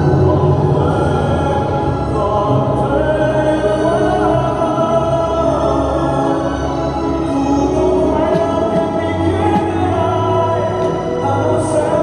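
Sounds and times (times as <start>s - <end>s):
choral music over sound system: 0.0s - 12.0s.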